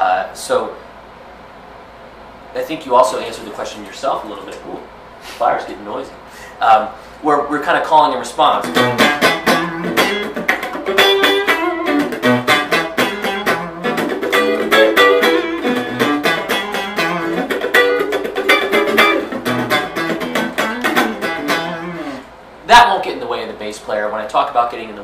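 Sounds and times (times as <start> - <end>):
electric guitar blues licks: 8.5 - 22.3.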